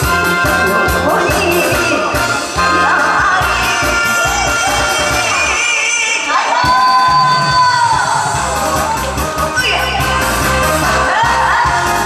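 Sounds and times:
backing track with bass beat: 0.0s - 5.6s, 6.6s - 12.0s
woman singing through microphone: 1.2s - 8.3s, 10.8s - 12.0s.

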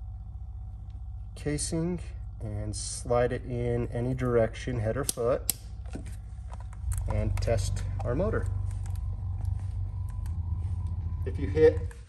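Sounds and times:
vibration motor buzzing hum: 0.0s - 12.0s.

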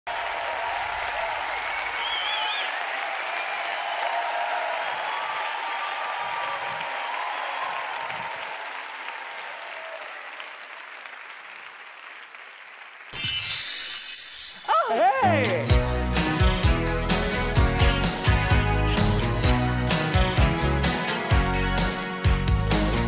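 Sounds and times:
audience applauding: 0.1s - 13.8s
crowd cheering: 0.1s - 15.7s.

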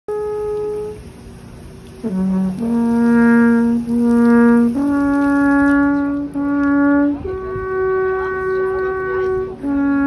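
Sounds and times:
alphorns holding long note: 0.1s - 1.2s, 2.0s - 10.0s.

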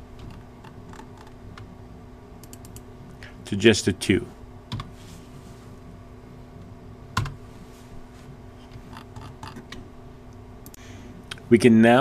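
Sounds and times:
faint steady hum: 0.0s - 12.0s.

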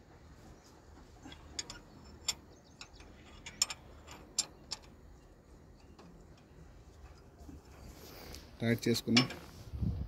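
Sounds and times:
spanner clicking on bolts: 1.3s - 7.3s.

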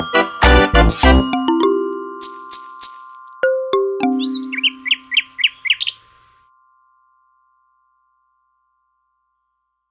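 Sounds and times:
bird chirping: 4.1s - 6.4s.

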